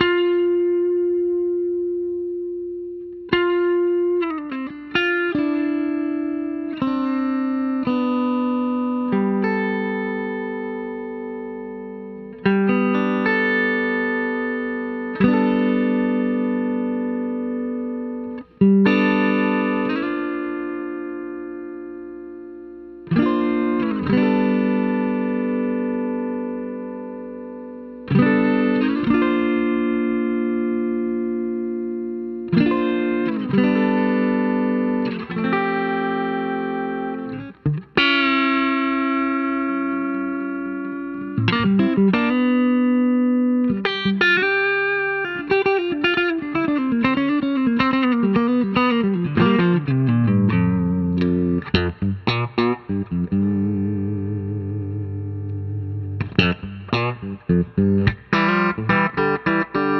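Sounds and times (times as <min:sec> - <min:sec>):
electric guitar chords: 0:00.0 - 0:59.9.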